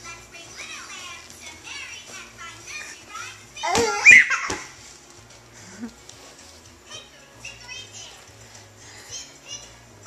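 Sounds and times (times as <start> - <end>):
baby squealing: 3.6 - 4.7.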